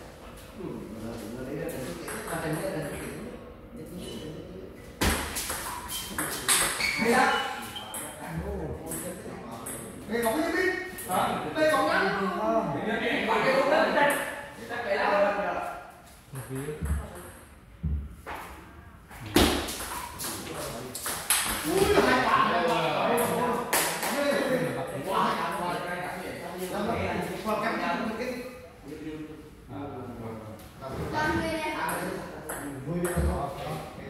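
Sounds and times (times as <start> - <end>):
people talking: 0.6 - 4.6, 20.2 - 34.0.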